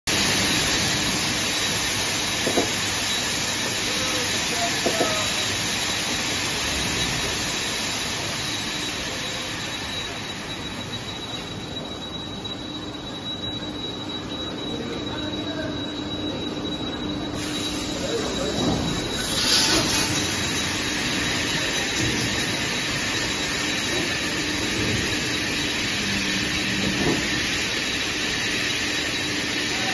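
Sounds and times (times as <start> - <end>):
thin high machine whine: 0.1 - 29.9.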